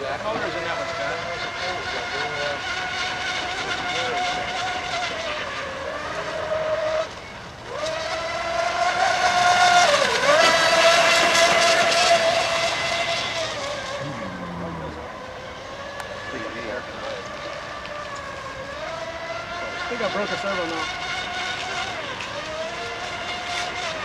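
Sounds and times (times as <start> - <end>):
rc boat motor whine: 0.0 - 24.0.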